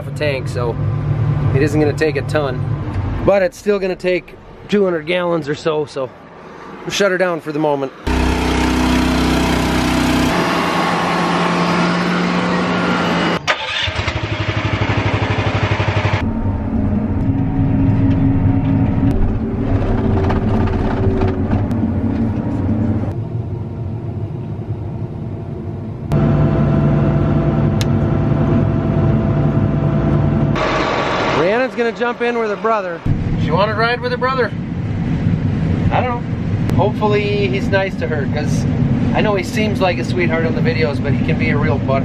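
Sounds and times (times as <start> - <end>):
diesel farm machinery running: 0.0 - 5.2, 8.0 - 42.0.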